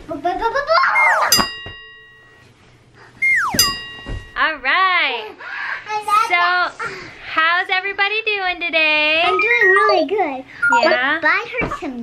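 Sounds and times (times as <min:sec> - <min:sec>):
rising cartoon notes: 0:01.0 - 0:01.4, 0:03.2 - 0:04.0, 0:09.3 - 0:10.0
bright ding: 0:01.0 - 0:02.5, 0:03.2 - 0:04.5.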